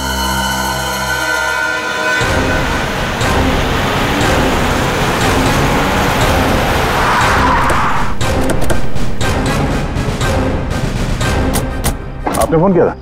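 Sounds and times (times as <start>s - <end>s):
car engine: 0.8s - 11.9s.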